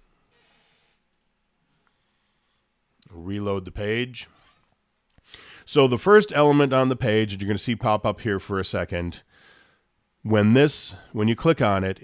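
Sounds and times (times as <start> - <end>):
faint soft hiss: 0.0 - 7.3.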